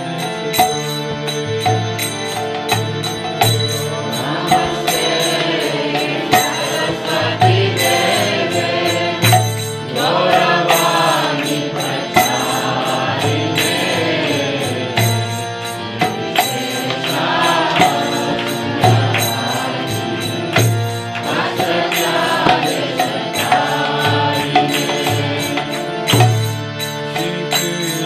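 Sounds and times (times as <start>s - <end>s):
harmonium chords: 0.0s - 28.0s
man singing a chant: 27.1s - 28.0s.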